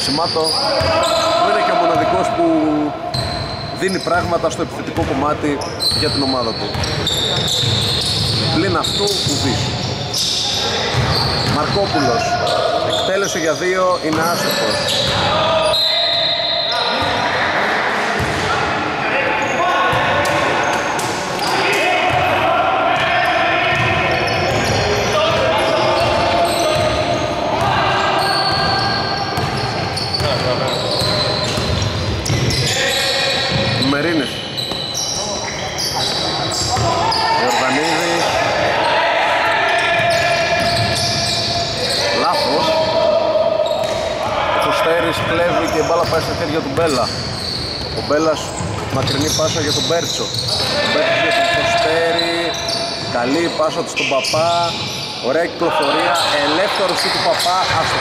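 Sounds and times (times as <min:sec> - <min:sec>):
voices in echoing hall: 0:00.0 - 0:58.0
basketball bouncing on court: 0:05.9 - 0:09.8, 0:10.9 - 0:12.1, 0:18.2 - 0:18.5, 0:23.0 - 0:27.8, 0:28.4 - 0:32.7, 0:45.2 - 0:50.8.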